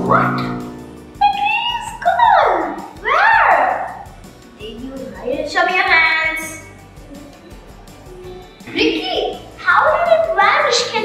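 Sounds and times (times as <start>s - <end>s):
sliding-pitch tone effect: 0.0s - 2.2s.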